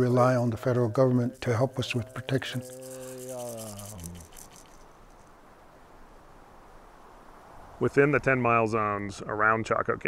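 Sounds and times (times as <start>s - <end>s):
man humming a low note: 0.0s - 4.4s
faint background hiss: 0.0s - 10.0s.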